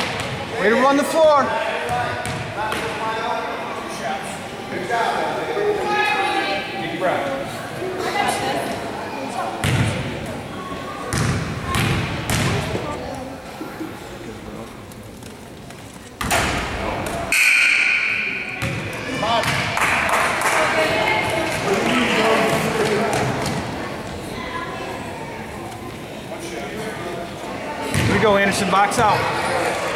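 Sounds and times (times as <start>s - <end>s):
spectators talking: 0.0s - 29.9s.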